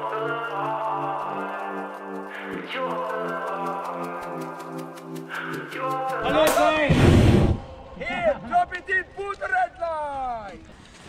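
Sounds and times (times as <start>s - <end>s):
people talking and calling out: 0.0s - 7.0s
loud rushing noise: 6.4s - 8.0s.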